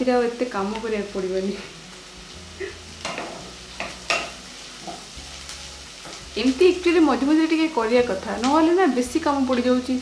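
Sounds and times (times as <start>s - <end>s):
food frying: 0.0s - 10.0s.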